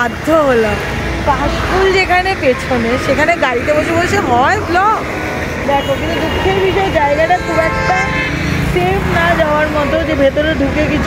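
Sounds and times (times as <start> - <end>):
road traffic rumble: 0.0 - 11.0
vehicle horn steady note: 5.8 - 8.7.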